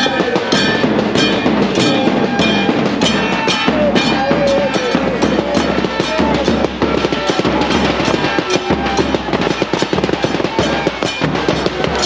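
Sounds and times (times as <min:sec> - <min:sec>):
bass drums and snare drums: 0:00.0 - 0:12.0
cymbals: 0:00.0 - 0:12.0.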